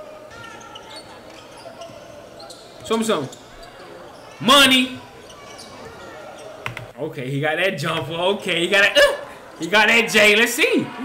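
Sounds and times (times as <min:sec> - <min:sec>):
crowd voices murmuring: 0:00.0 - 0:07.0, 0:08.0 - 0:11.0
sneaker squeaks: 0:00.2 - 0:07.0.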